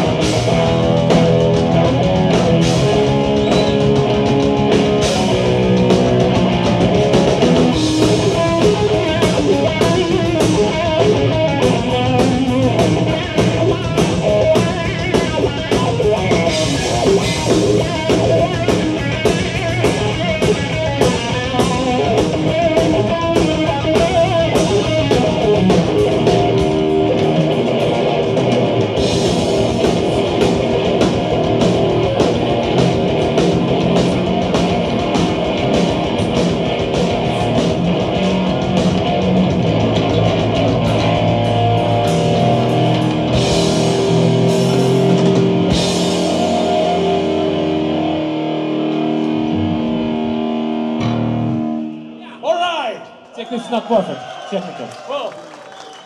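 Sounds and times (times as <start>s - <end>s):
heavy metal band playing: 0.0s - 52.9s.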